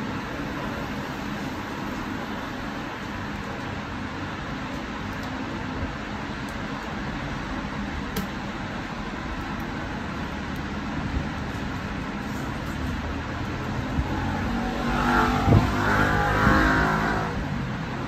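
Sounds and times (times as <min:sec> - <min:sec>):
road traffic noise: 0:00.0 - 0:18.0
vehicle engine passing: 0:13.6 - 0:17.5.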